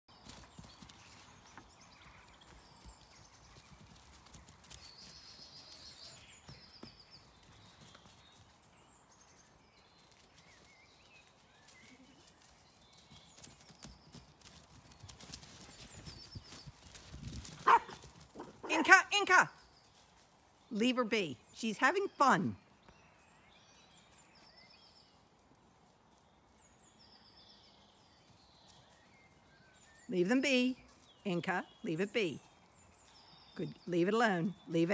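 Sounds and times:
hooves thudding on grass: 0:00.1 - 0:34.9.

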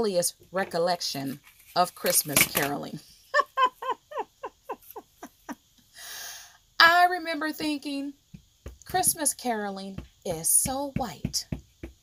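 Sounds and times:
woman laughing: 0:03.2 - 0:05.6.

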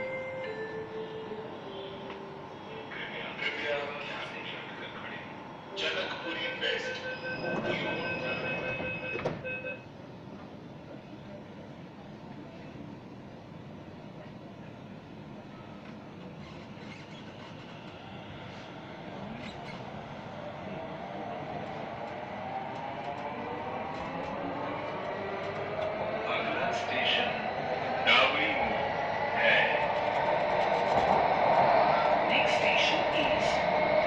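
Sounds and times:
warning beeps: 0:06.5 - 0:09.8
train running noise: 0:13.6 - 0:34.0.

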